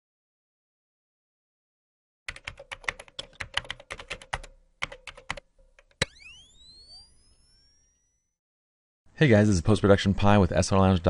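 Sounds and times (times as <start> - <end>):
rising tones into high ring: 6.0 - 8.4.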